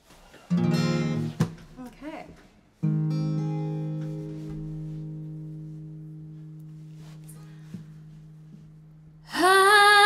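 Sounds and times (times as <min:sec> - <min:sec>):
acoustic guitar chord ringing: 0:00.5 - 0:01.6, 0:02.8 - 0:09.7.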